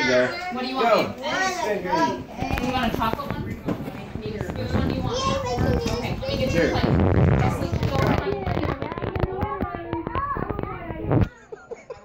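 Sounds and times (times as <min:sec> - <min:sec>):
voices in a room: 0:00.0 - 0:12.0
sharp clicks and crackles: 0:06.8 - 0:11.3.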